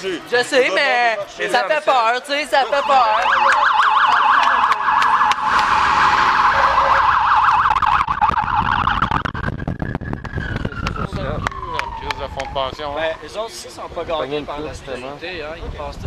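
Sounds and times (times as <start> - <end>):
police siren: 2.7 - 13.7.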